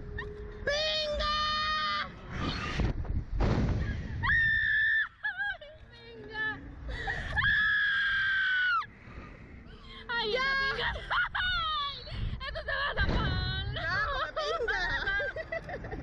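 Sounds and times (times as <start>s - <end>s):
women screaming: 4.2s - 5.6s, 6.9s - 8.9s, 10.3s - 12.9s.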